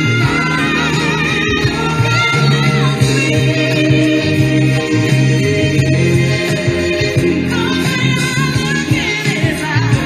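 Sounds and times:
bass line: 0:00.0 - 0:10.0
woman singing soul ballad: 0:00.0 - 0:10.0.

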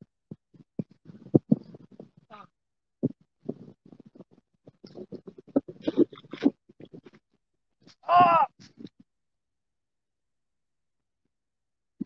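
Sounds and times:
crackling and clicking: 0:03.0 - 0:07.2.

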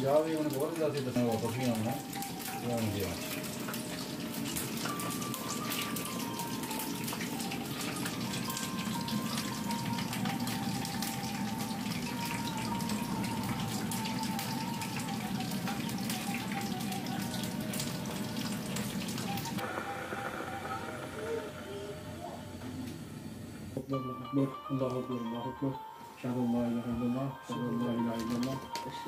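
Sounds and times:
running water: 0:00.0 - 0:20.2
faint music: 0:00.0 - 0:29.0.

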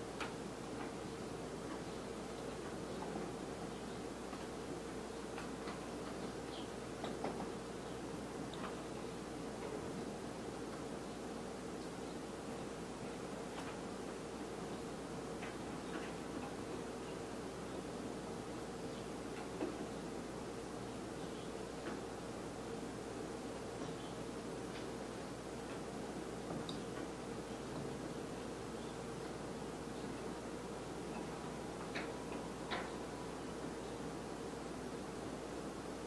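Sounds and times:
background hiss and hum: 0:00.0 - 0:36.0.

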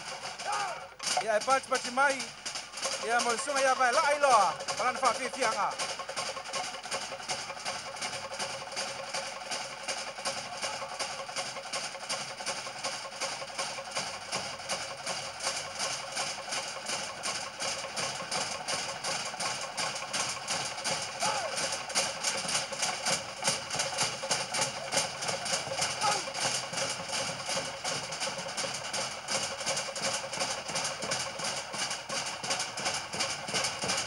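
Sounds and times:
fast log drum beat: 0:00.0 - 0:34.0.

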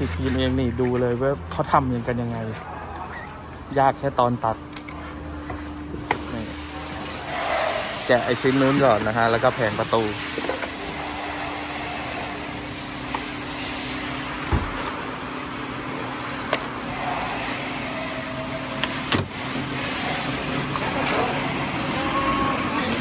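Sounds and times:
workshop hum: 0:00.0 - 0:23.0.

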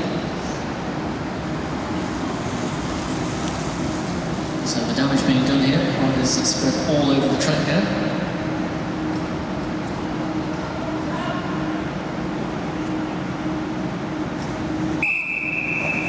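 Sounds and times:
steady high-pitched tone: 0:02.0 - 0:16.0.

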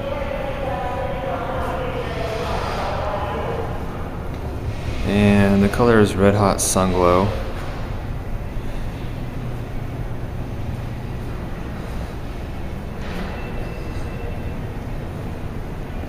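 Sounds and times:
low rumble: 0:00.0 - 0:16.0.

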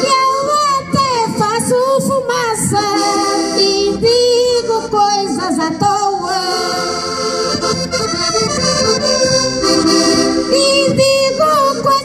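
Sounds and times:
woman singing through a pa: 0:00.0 - 0:06.8, 0:10.5 - 0:12.0
button accordions: 0:00.0 - 0:12.0.

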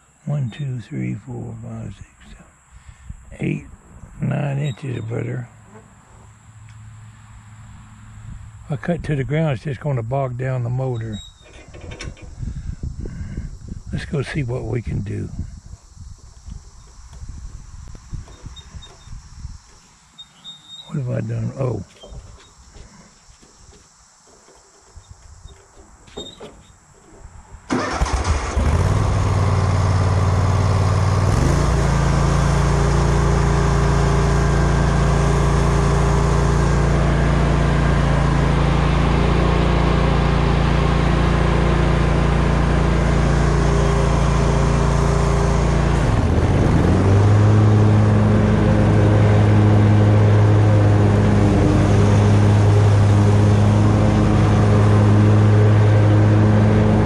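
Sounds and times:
riding mower engine: 0:00.0 - 0:57.0.

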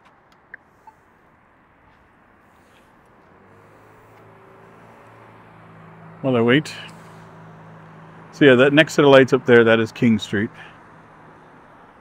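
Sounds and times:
faint street traffic: 0:00.0 - 0:12.0
vehicle engine hum: 0:00.0 - 0:12.0.

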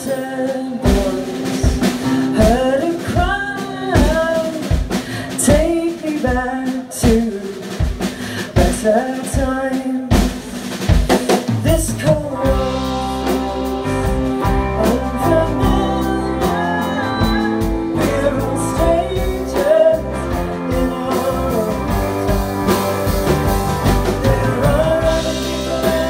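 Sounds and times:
electric guitars: 0:00.0 - 0:05.7, 0:11.8 - 0:26.0
bass guitar: 0:00.0 - 0:07.2, 0:11.5 - 0:26.0
person singing: 0:00.0 - 0:10.4, 0:11.3 - 0:26.0
drum kit: 0:00.0 - 0:26.0.

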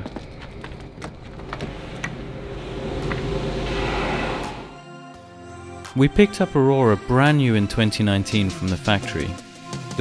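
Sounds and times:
steady rushing noise: 0:00.0 - 0:04.8.

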